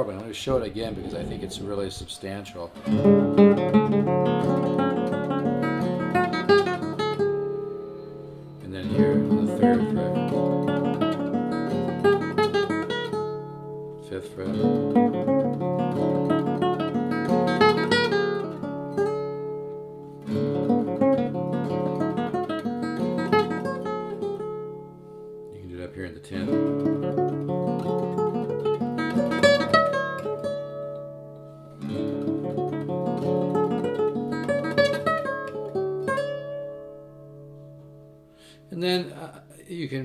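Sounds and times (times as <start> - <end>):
fingerstyle classical guitar: 2.6 - 25.5, 26.2 - 38.3.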